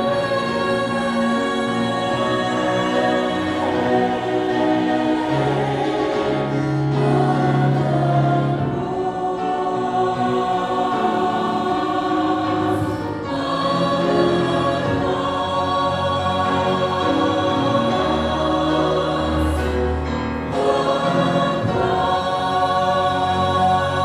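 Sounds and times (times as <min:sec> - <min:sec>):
choir singing held chords: 0:00.0 - 0:24.0.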